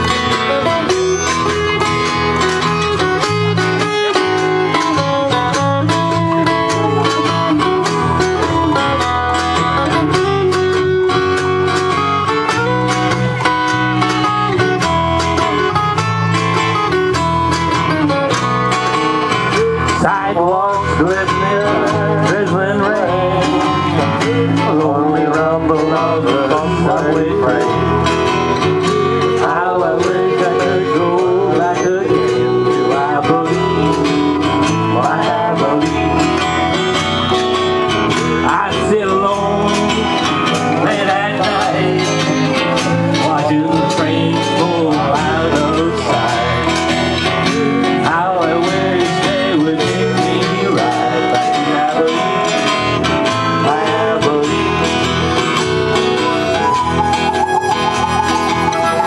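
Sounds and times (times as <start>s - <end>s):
acoustic guitar: 0.0s - 59.0s
country folk band playing: 0.0s - 59.0s
pitch-bending lead melody: 0.0s - 59.0s.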